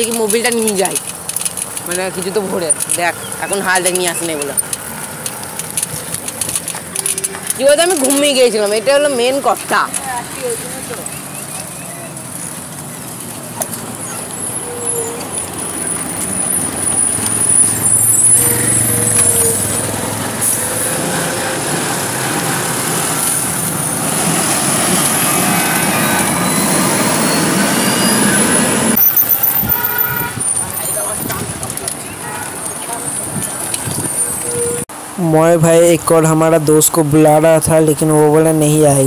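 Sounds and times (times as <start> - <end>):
road traffic passing: 0.0 - 39.0
motorcycle passing: 1.8 - 30.0
vehicle horn: 27.3 - 31.2, 32.1 - 33.1.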